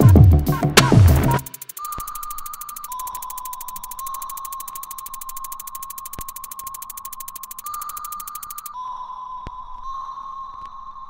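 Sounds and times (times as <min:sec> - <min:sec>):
fast even buzzing: 0:00.0 - 0:08.8
high electronic whine: 0:00.8 - 0:08.8.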